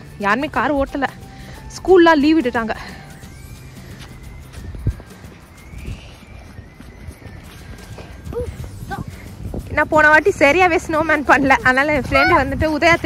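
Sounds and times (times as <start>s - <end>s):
faint music: 0.0s - 13.0s
footsteps crunching through snow: 3.4s - 9.3s
wind rumble on microphone: 4.2s - 13.0s.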